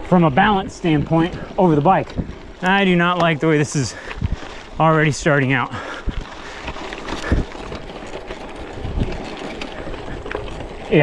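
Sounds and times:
bike tyres crunching on gravel: 0.0 - 11.0
wind on microphone: 4.1 - 4.8, 6.0 - 8.0, 8.6 - 10.8.

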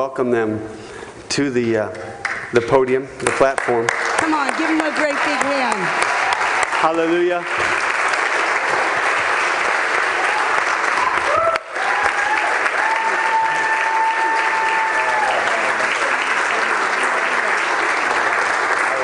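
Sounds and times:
congregation clapping: 2.2 - 19.0.

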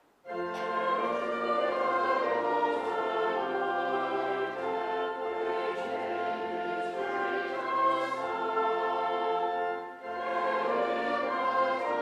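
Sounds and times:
pipe organ: 0.2 - 12.0
choir and congregation singing hymn: 0.3 - 12.0.

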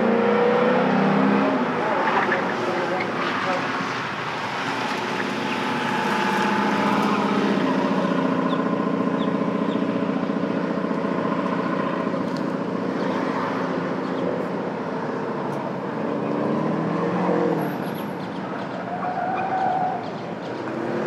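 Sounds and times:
car engine running hard: 0.0 - 21.0.

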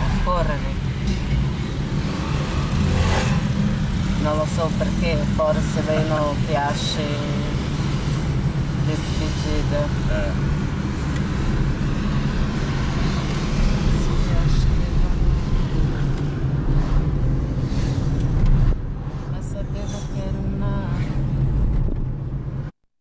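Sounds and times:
car engine and road rumble: 0.0 - 22.8.

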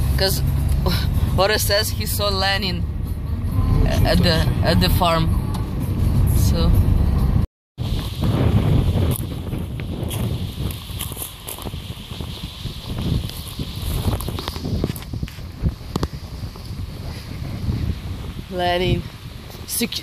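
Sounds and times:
car cabin road noise: 0.0 - 20.0
wind rumbling on microphone: 0.0 - 20.0.

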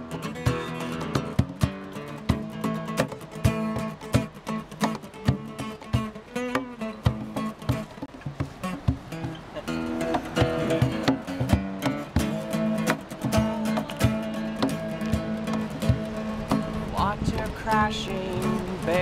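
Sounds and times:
acoustic guitar strumming: 0.0 - 19.0
cajon beat: 0.0 - 19.0.

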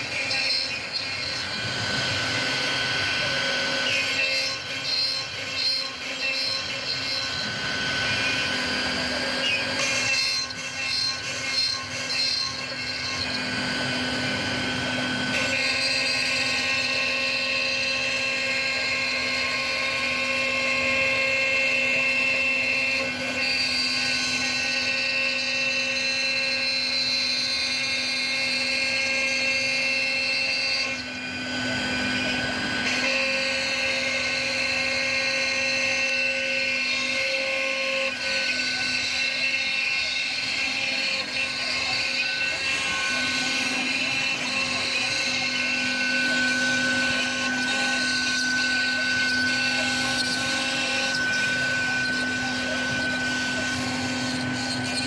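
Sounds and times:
end mill cutting wood: 0.0 - 55.0
router spindle whining: 0.0 - 55.0.

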